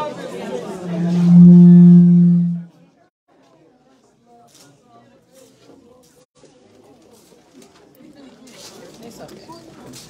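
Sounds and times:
crowd of voices talking: 0.0 - 2.7.

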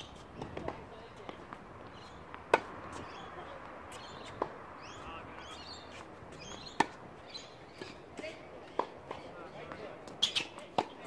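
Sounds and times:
racket striking tennis ball: 2.4 - 3.2.

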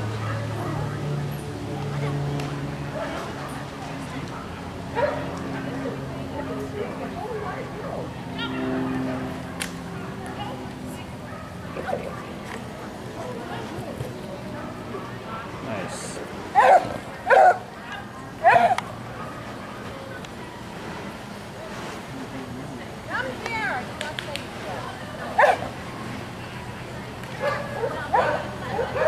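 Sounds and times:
dog barking: 5.0 - 5.2, 16.6 - 17.6, 18.4 - 19.4, 25.4 - 25.7, 27.4 - 29.0.

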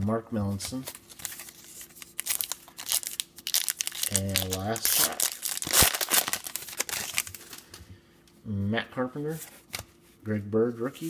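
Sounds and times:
plastic wrapper crinkling: 0.8 - 7.7.

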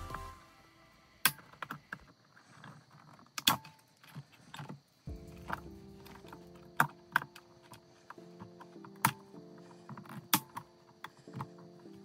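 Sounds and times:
faint background music: 3.4 - 12.0.

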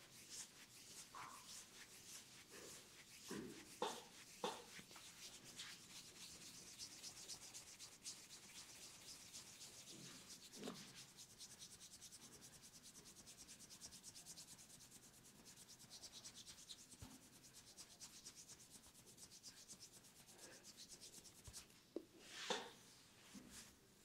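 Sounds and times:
hands rubbing skin and hair: 0.0 - 23.8.

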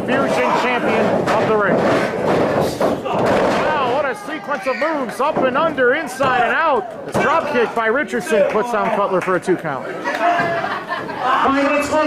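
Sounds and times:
bodies thudding on wrestling ring: 0.9 - 4.1.

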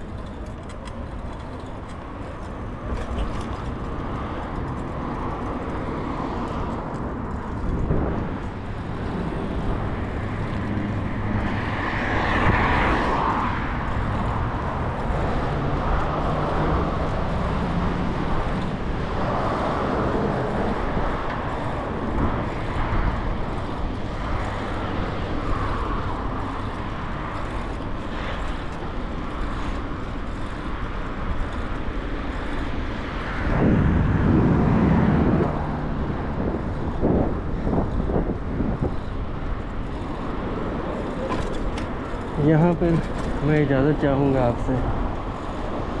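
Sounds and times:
low traffic rumble: 0.0 - 46.0
vehicles passing: 0.0 - 46.0.

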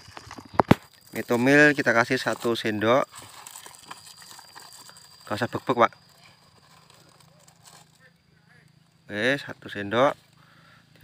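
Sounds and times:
spoon scraping powder in foil bag: 0.0 - 8.1.

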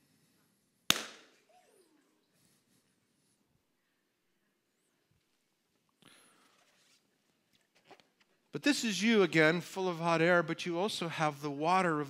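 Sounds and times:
balloon bursting pop: 0.9 - 1.4.

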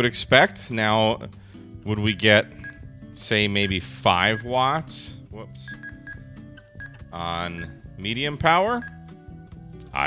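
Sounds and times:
radio keypad beeps: 3.6 - 4.5, 5.7 - 6.2.

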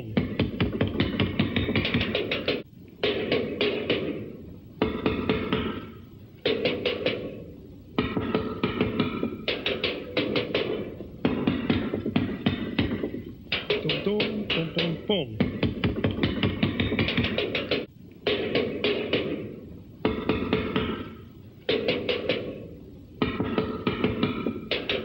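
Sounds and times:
drum kit rapid strokes: 0.0 - 7.4, 8.0 - 25.0.

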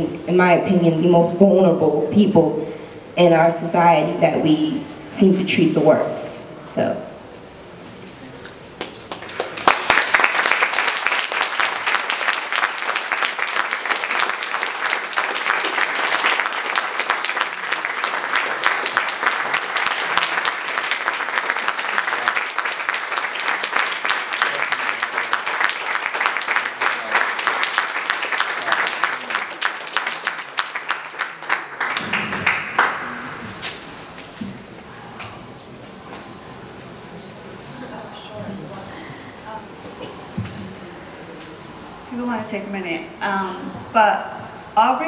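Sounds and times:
audience clapping: 8.8 - 33.8.

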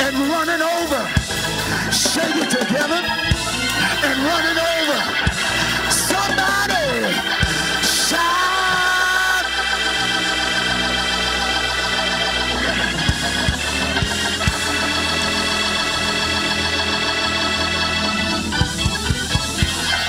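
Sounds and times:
electric organ chords: 0.0 - 20.0
low thumps: 12.4 - 20.0.

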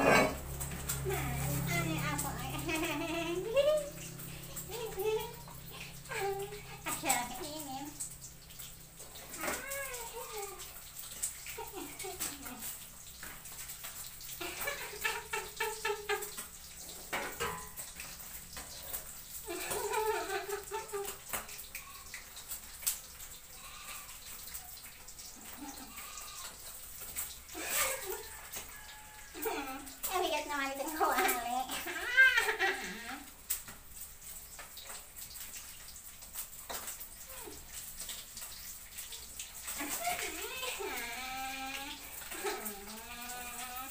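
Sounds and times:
fish frying in hot oil: 0.0 - 43.9
oil popping and spattering: 0.0 - 43.9
woman laughing: 2.4 - 3.9, 19.5 - 21.2, 27.6 - 28.3, 31.8 - 33.2, 39.8 - 41.6.

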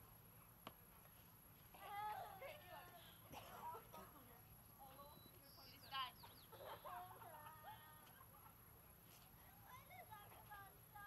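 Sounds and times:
faint bird chirping: 4.8 - 7.1.

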